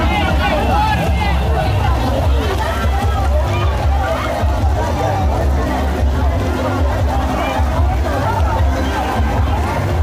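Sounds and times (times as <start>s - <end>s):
crowd shouting and chatter: 0.0s - 10.0s
street party music with heavy bass: 0.0s - 10.0s.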